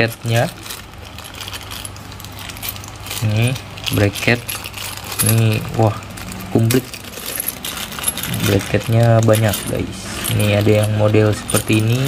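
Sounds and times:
metal brackets clinking in bag: 0.0 - 12.0
plastic packaging crinkling: 0.0 - 12.0.

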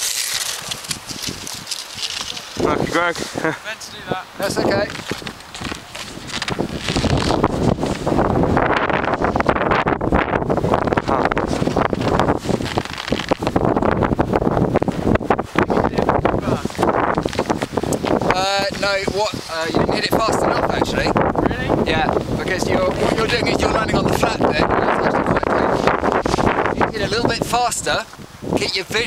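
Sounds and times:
wind buffeting microphone: 0.0 - 29.0
person's voice: 2.2 - 5.0, 18.3 - 25.9, 26.8 - 29.0.

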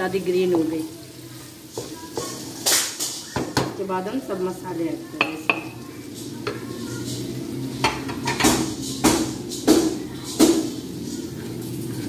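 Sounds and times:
light sizzle of frying: 0.0 - 12.0.

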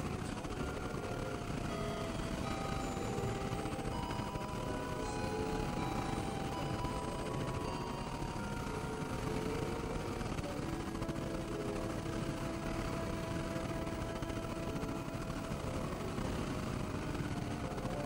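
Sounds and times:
held drone tones: 0.0 - 18.0
synthesizer noise bed: 0.0 - 18.0.

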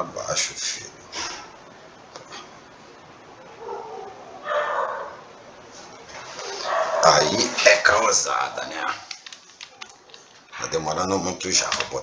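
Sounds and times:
household pet calling: 3.5 - 5.2.

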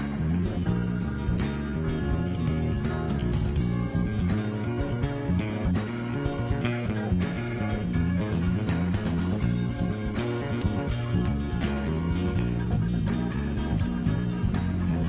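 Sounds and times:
electric bass line: 0.0 - 15.0.

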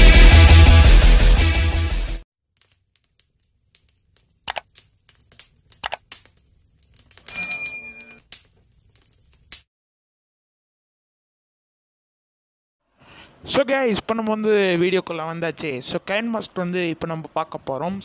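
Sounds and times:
sharp mouse clicks: 4.5 - 6.3
short bright bell chime: 7.3 - 8.2.

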